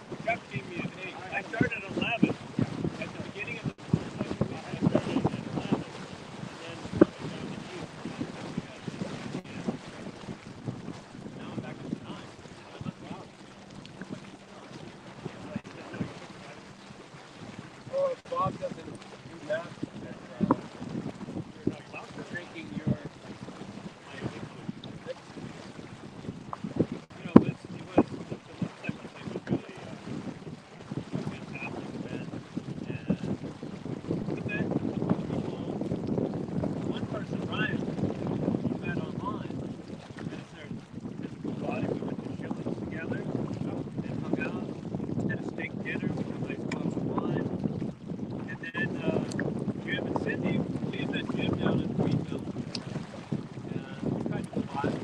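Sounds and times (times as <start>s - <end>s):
water rushing along hull: 0.0s - 55.0s
wind buffeting microphone: 0.0s - 55.0s.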